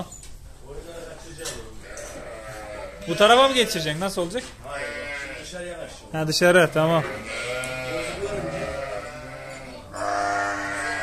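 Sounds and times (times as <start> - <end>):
sheep bleating: 1.8 - 4.0, 4.6 - 5.6, 6.6 - 11.0.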